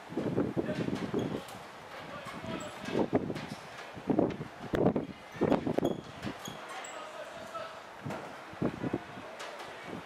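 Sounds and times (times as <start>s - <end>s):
wind on microphone: 0.0s - 6.5s, 8.0s - 10.0s.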